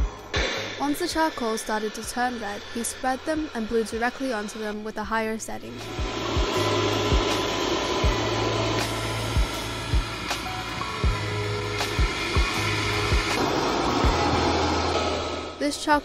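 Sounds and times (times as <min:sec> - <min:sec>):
background music with thuds: 0:00.0 - 0:01.2, 0:05.8 - 0:15.6
blower running: 0:00.0 - 0:15.6.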